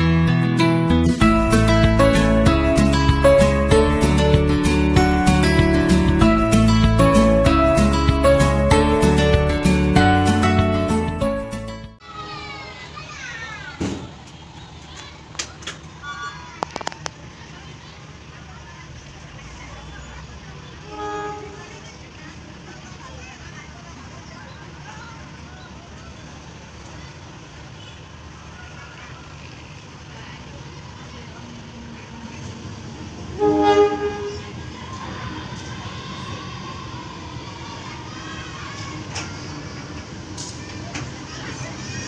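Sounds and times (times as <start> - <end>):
train running: 12.0 - 42.0
locomotive horn blast: 20.8 - 21.8, 33.3 - 34.6.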